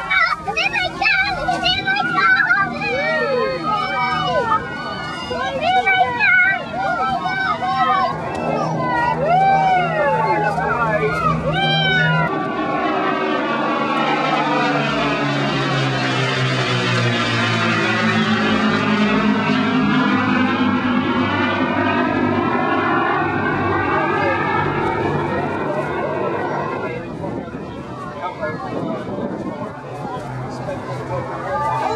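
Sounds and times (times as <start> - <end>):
propeller aircraft engines droning: 0.0 - 31.9
spectators' voices: 0.0 - 31.9.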